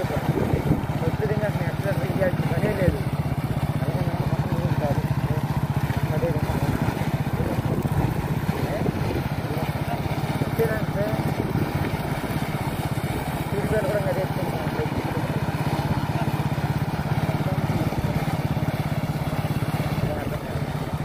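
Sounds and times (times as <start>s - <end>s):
small motorcycle engine running: 0.0s - 21.0s.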